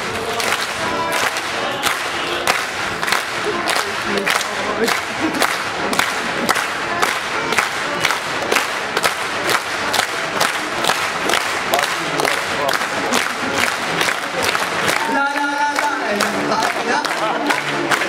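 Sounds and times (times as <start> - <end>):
audience clapping in unison: 0.0 - 18.0
crowd shouting and cheering: 0.0 - 18.0.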